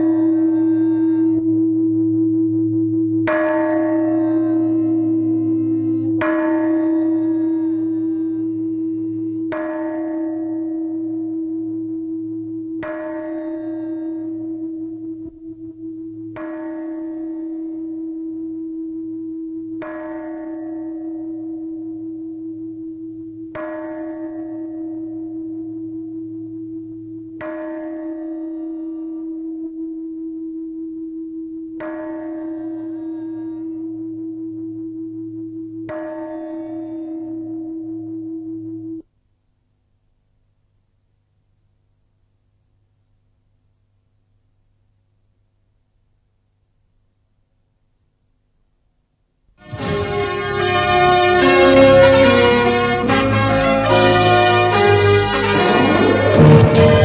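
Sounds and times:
large temple bell tolling: 3.2s - 26.6s, 35.9s - 38.2s, 49.7s - 57.0s.

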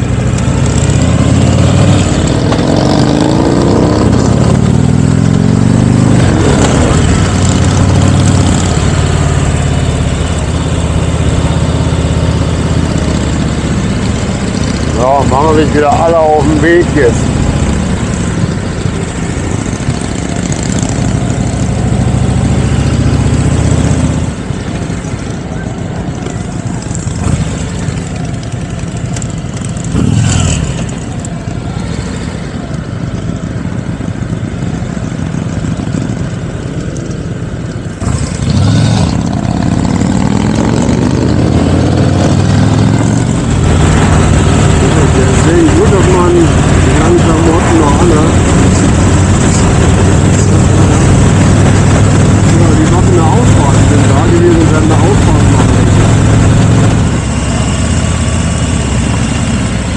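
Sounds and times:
trike engine running: 0.0s - 59.9s.

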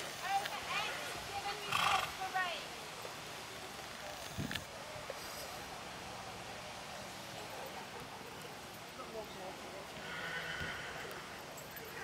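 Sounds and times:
horse snorting: 1.6s - 2.2s.

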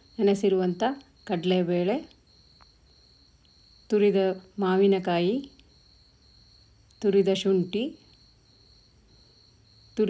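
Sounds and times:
woman speaking: 0.2s - 2.1s, 3.9s - 5.6s, 7.0s - 8.0s.

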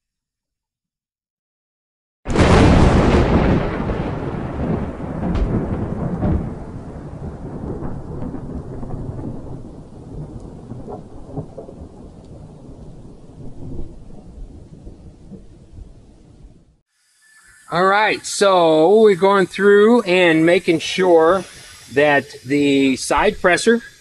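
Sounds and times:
deep rolling rumble: 2.4s - 9.9s
scattered crackles: 3.4s - 16.0s.

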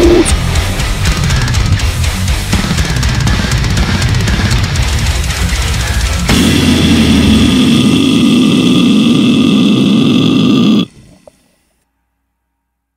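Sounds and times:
death metal band playing: 0.0s - 10.9s
held distorted guitar note: 0.0s - 11.4s.

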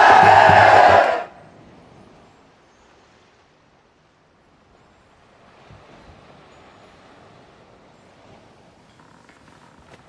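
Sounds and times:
crowd cheering and yelling: 0.0s - 1.3s.

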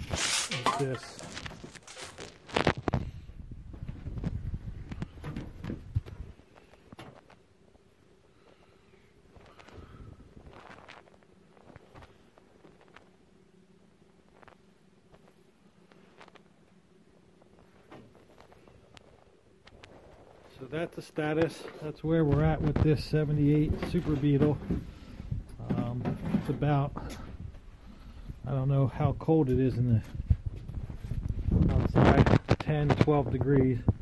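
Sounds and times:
faint steady hum: 0.0s - 34.0s.

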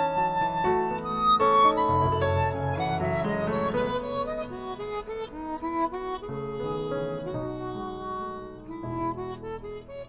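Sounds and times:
harmonica playing: 0.0s - 10.0s
piano accompaniment: 0.0s - 10.0s.

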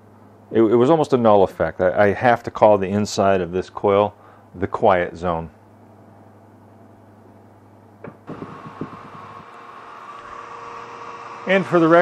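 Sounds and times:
low hum: 5.9s - 10.6s
electric motor whirring: 8.3s - 12.0s.

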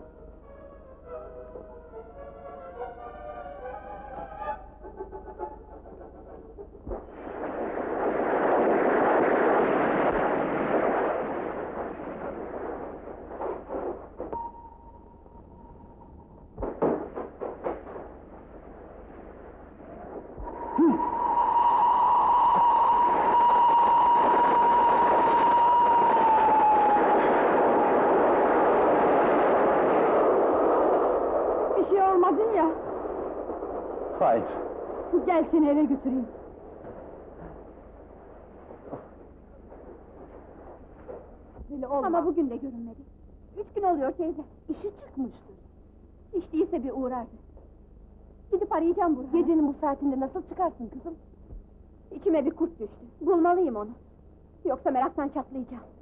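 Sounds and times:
old film music: 0.0s - 6.8s
steam train rushing: 20.5s - 29.0s.

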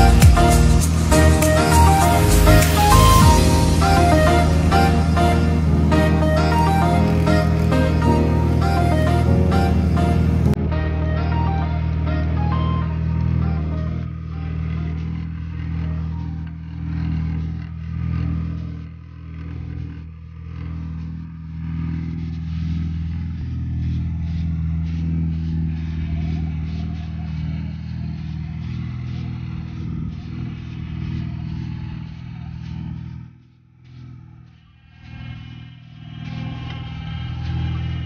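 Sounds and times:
atv engine idling: 11.9s - 33.0s.

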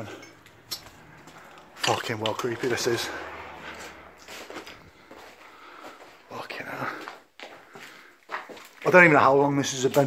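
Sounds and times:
faint footsteps and shuffling: 0.0s - 10.0s
soft scuffs and knocks: 3.7s - 6.3s, 7.0s - 9.0s.

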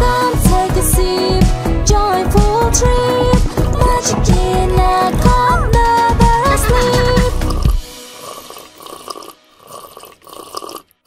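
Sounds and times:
children's song backing music: 0.0s - 8.1s
cartoon slurping through straws: 6.4s - 11.0s.

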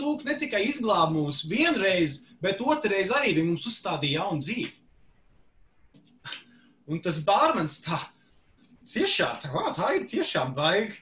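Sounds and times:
man speaking: 0.0s - 4.9s, 6.2s - 11.0s.

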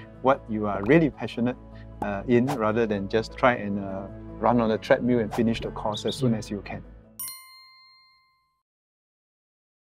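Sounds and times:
background music: 0.0s - 7.6s
bright bell ding: 7.2s - 8.6s.

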